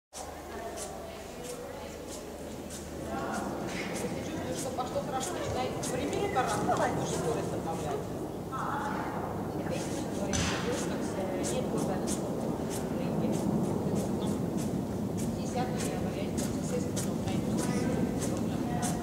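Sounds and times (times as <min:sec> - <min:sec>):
reverberant hall noise: 0:00.2 - 0:19.0.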